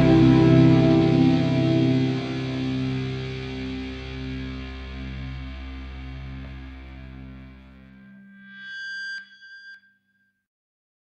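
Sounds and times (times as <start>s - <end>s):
electric guitar high note: 0.0s - 8.3s.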